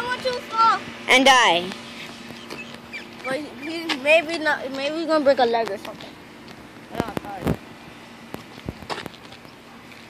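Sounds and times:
footsteps on shingle roof: 0:01.7 - 0:07.6, 0:08.3 - 0:10.0.

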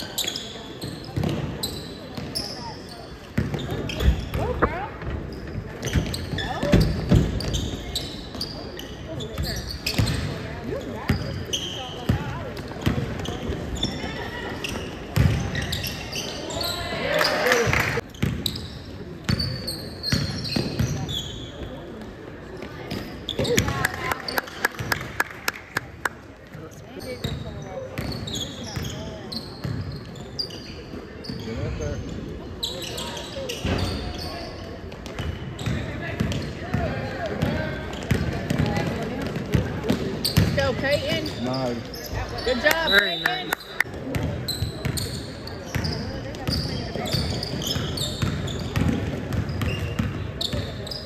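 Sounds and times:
sneakers squeaking: 0:00.0 - 0:25.1, 0:26.5 - 0:51.0
voices in a gym: 0:00.0 - 0:51.0.

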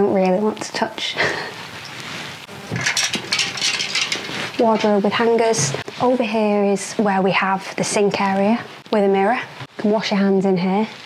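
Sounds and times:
soft rustling handling noise: 0:01.6 - 0:02.5.

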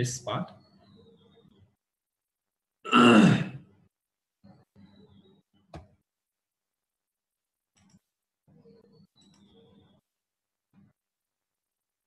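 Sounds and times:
man clearing his throat: 0:02.9 - 0:03.6.

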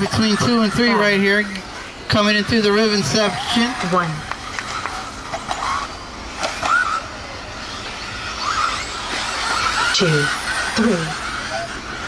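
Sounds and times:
electric motors whining: 0:00.0 - 0:12.0.

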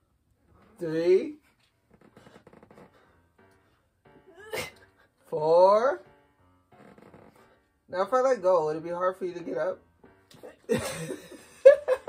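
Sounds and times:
woman straining vocal sound: 0:04.3 - 0:04.8.

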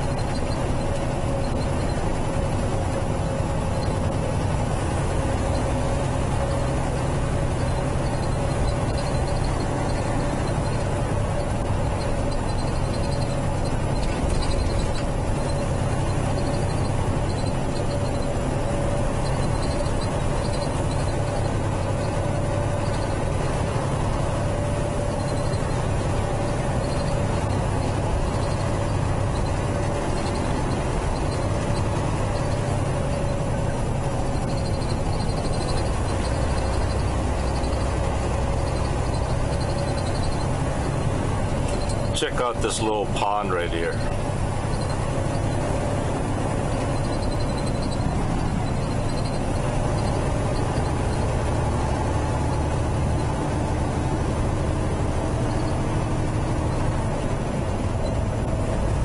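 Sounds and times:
diesel truck engine drone: 0:00.0 - 0:59.0
mid-pitched hum: 0:00.0 - 0:59.0
road noise: 0:00.0 - 0:59.0.

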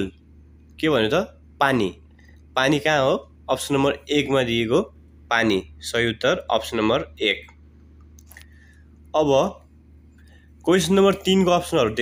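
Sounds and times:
steady low hum: 0:00.0 - 0:12.0
mouth clicks and lip noises: 0:07.4 - 0:08.6.

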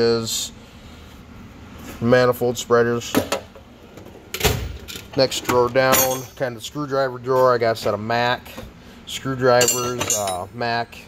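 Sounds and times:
metal drawer sliding shut: 0:04.0 - 0:05.7.

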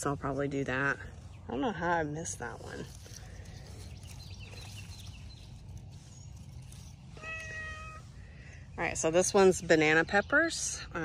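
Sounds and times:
cat meowing: 0:07.2 - 0:08.0.

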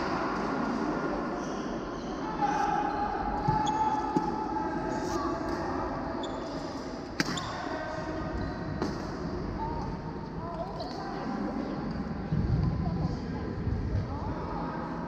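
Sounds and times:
murmur of voices: 0:00.0 - 0:15.0
rackets hitting shuttlecock: 0:07.2 - 0:07.6.

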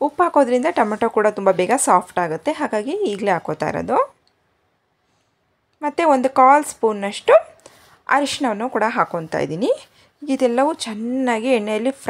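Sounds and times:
woman speaking: 0:00.0 - 0:04.2, 0:05.8 - 0:12.0.

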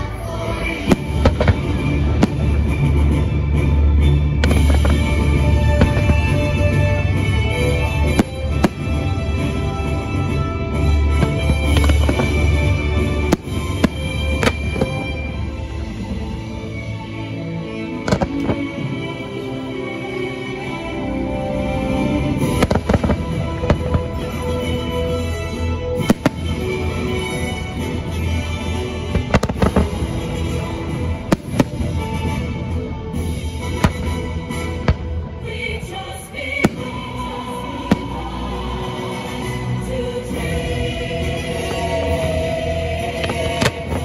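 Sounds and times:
show music playing: 0:00.0 - 0:44.0
fireworks bangs: 0:00.8 - 0:15.5, 0:18.1 - 0:19.0, 0:22.2 - 0:24.8, 0:26.0 - 0:27.5, 0:29.1 - 0:32.5, 0:43.0 - 0:44.0.

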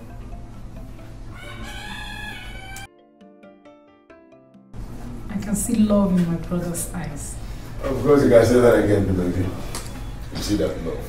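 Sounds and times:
rooster crowing: 0:01.3 - 0:02.9
low background hum: 0:04.8 - 0:11.0.

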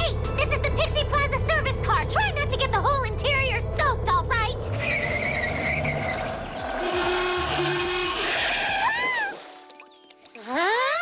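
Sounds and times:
cartoon engine rumbling: 0:00.0 - 0:09.3
tyres squealing: 0:04.7 - 0:09.6.

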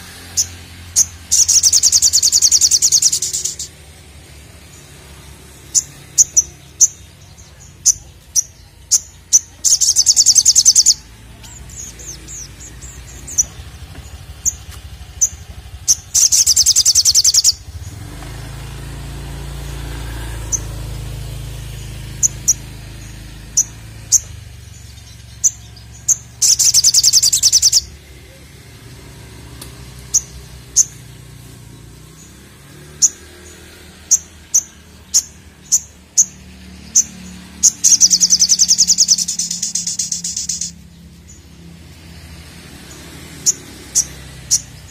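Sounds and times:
bird chirping and trilling: 0:00.0 - 0:44.9.

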